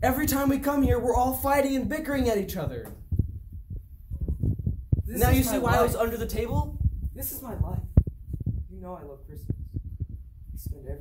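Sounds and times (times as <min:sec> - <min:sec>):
dull low thumps and rumble: 0:00.0 - 0:11.0.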